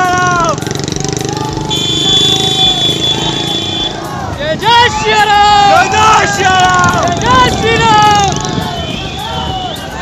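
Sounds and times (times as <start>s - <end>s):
motorcycle engines running: 0.0s - 10.0s
people shouting: 0.0s - 10.0s.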